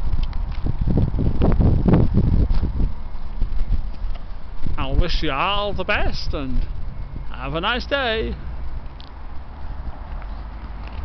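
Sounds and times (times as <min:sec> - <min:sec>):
footsteps on path: 0:00.0 - 0:11.0
steady low rumble: 0:00.0 - 0:11.0.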